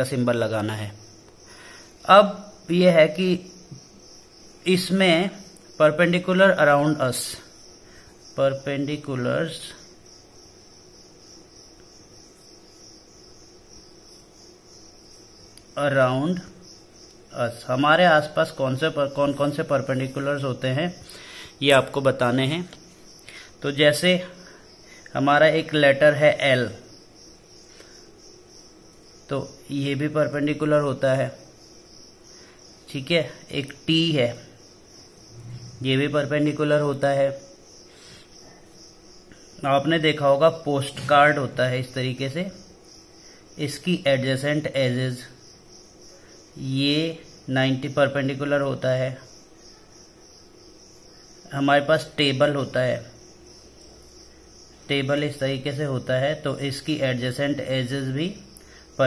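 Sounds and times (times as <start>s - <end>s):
man speaking: 0.0s - 1.0s, 2.0s - 3.6s, 4.6s - 7.5s, 8.4s - 9.8s, 15.8s - 16.6s, 17.3s - 21.0s, 21.6s - 22.8s, 23.6s - 24.4s, 25.1s - 26.8s, 29.3s - 31.4s, 35.4s - 37.5s, 39.6s - 42.6s, 43.6s - 45.4s, 46.6s - 49.3s, 51.5s - 53.1s, 54.9s - 58.5s
crickets chirping: 0.0s - 59.0s
faint high-pitched whine: 0.0s - 59.0s.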